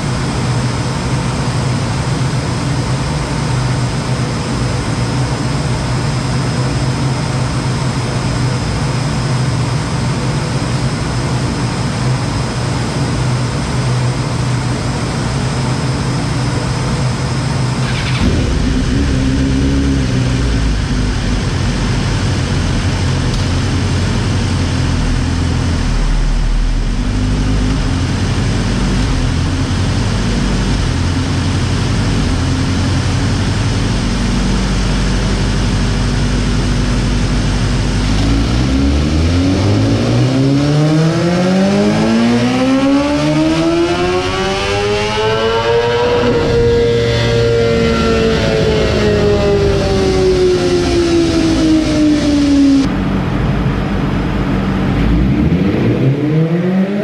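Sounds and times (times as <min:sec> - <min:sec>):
motorcycle engine revving: 0:17.6 - 0:57.0.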